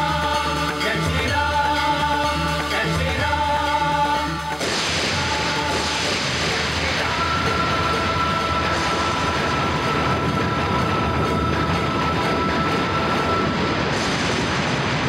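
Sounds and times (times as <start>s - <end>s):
dense rush of noise: 4.6s - 15.0s.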